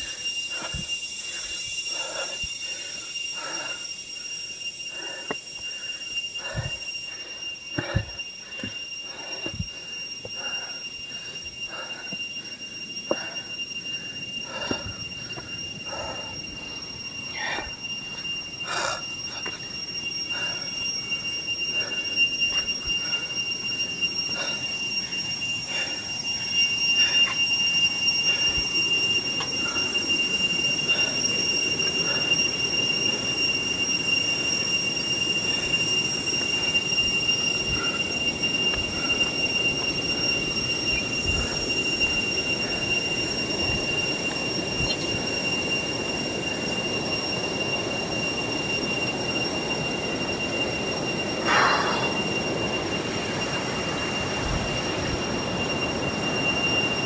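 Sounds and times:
high-pitched two-tone whine: 0:00.0 - 0:57.0.

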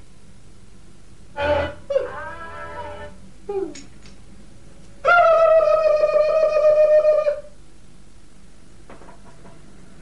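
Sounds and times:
held instrument note: 0:01.3 - 0:03.2.

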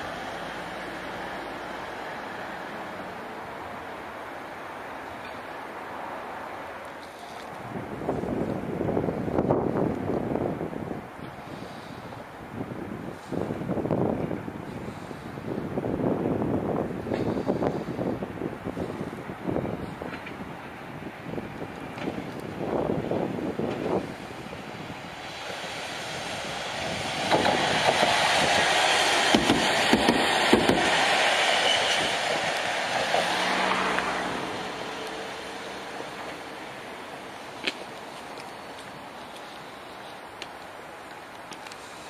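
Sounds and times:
tram rolling past: 0:00.0 - 0:42.0.

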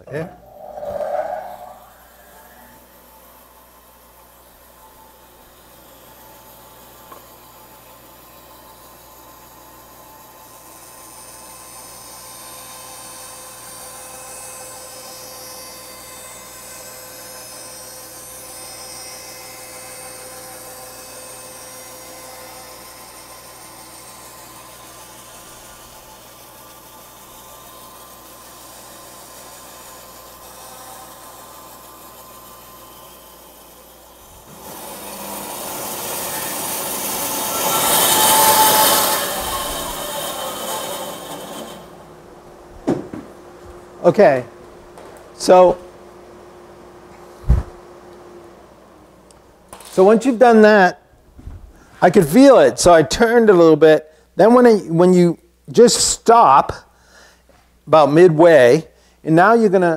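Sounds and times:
bandsaw cutting a board: 0:34.5 - 0:42.0.

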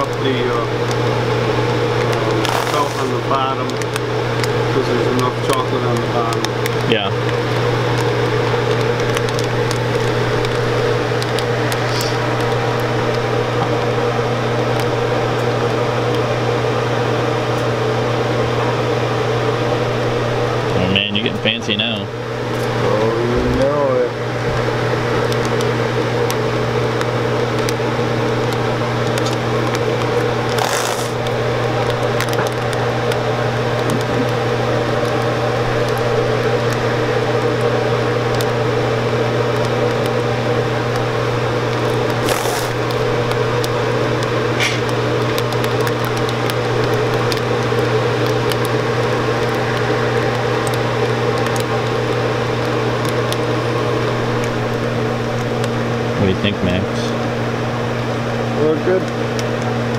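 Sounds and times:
machine mechanical hum: 0:00.0 - 0:59.9.

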